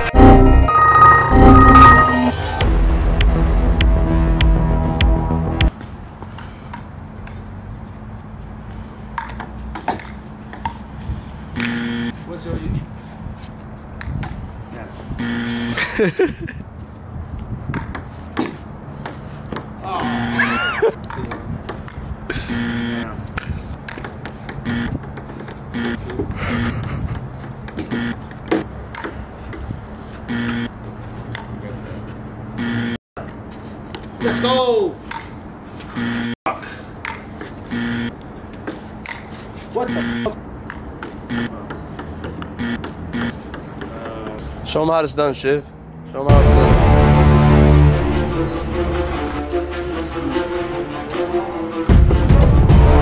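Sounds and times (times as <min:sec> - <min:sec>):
person laughing: 0:15.5 - 0:16.6, 0:20.1 - 0:21.0, 0:26.1 - 0:27.4.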